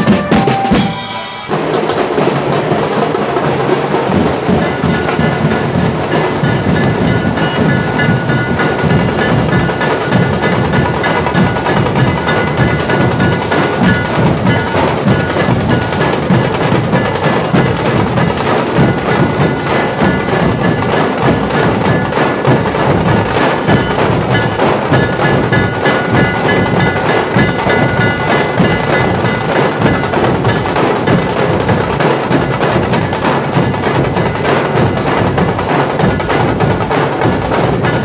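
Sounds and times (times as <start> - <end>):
ringing high metallic tone: 0.0 - 17.2
deep dhol beats: 0.0 - 38.0
fast rattling drum rolls: 0.0 - 38.0.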